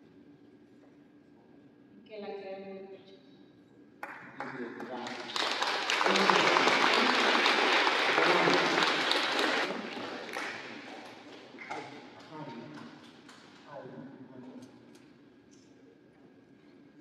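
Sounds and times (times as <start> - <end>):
congregation applauding: 4.0 - 12.3.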